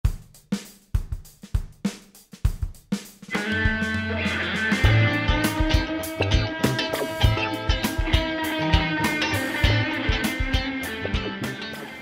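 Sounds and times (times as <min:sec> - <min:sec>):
rock drum beat: 0:00.0 - 0:12.0
bass guitar: 0:03.3 - 0:12.0
electric guitar: 0:03.3 - 0:12.0.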